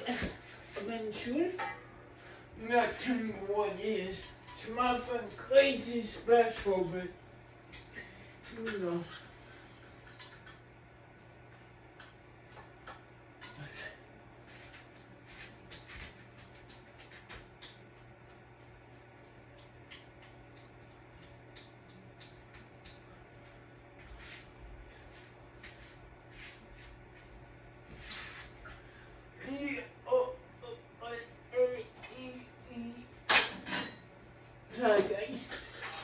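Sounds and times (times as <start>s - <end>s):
ceiling fan motor hum: 0.0s - 36.0s.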